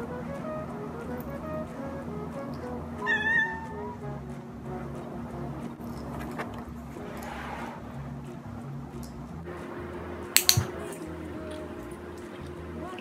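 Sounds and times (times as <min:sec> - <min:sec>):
background music: 0:00.0 - 0:13.0
cat meowing: 0:03.0 - 0:04.0.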